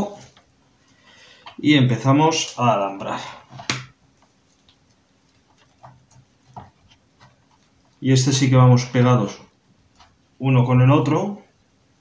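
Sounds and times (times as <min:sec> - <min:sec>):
person speaking: 0:00.0 - 0:00.4, 0:01.4 - 0:03.7, 0:07.9 - 0:11.6
faint handling sounds: 0:00.0 - 0:10.4.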